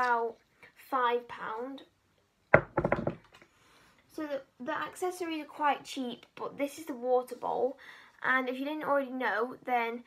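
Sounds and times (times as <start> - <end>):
object knocking on hard surface: 2.5 - 3.2.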